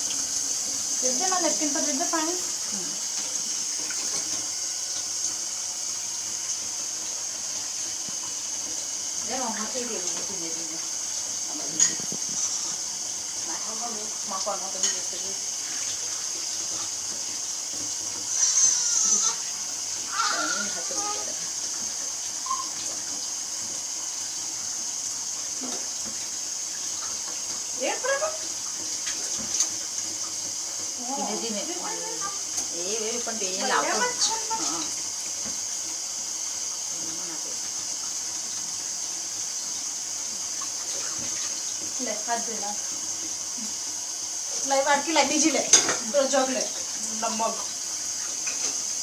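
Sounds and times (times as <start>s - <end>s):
water running into sink: 0.0s - 49.0s.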